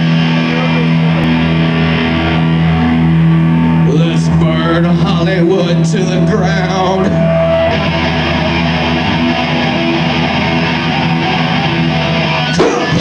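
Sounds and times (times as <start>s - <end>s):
electric guitars sustained chords: 0.0s - 13.0s
live punk band playing: 0.0s - 13.0s.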